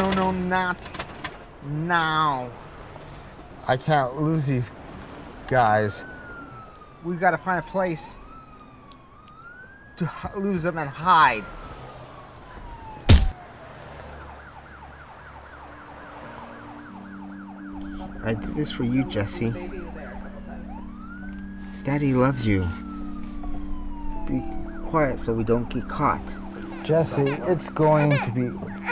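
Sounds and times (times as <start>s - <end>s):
police siren wailing: 1.6s - 28.9s.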